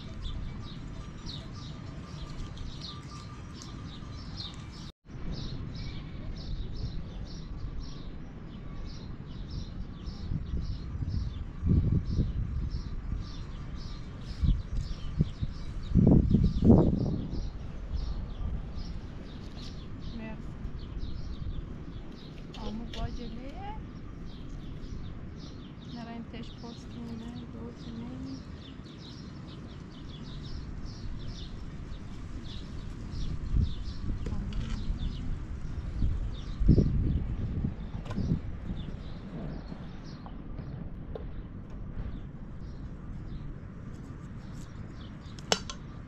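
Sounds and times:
low rumble of outdoor air: 0.0 - 46.0
small birds chirping: 0.0 - 46.0.

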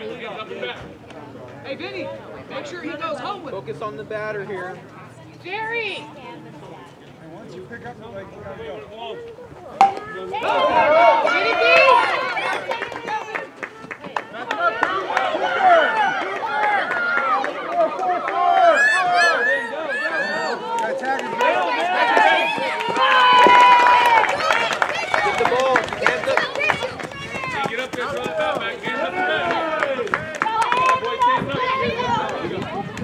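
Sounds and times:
crowd shouting and cheering: 9.8 - 33.0.

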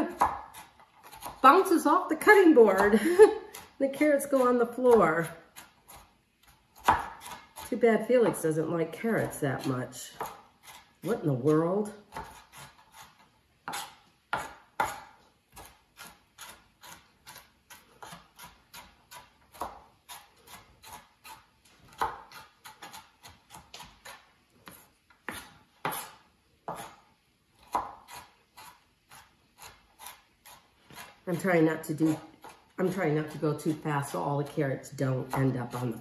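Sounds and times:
knife chopping on plastic board: 0.0 - 1.4, 3.5 - 7.8, 10.1 - 11.5, 12.1 - 27.0, 27.6 - 33.8.

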